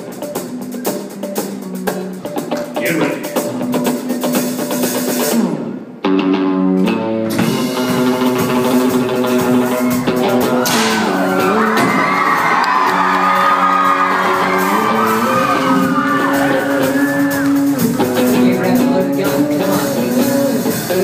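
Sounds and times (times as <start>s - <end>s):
rock band electric guitars: 0.0s - 21.0s
audience whooping and cheering: 9.3s - 18.0s.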